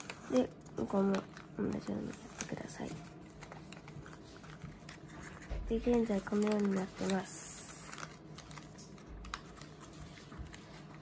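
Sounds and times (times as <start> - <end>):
origami paper clicks and rustles: 0.0 - 11.0.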